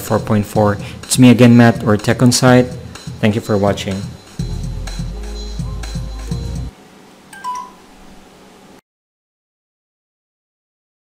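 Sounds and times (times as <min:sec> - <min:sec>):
background music: 0:00.0 - 0:06.7
bright chime: 0:07.4 - 0:07.9.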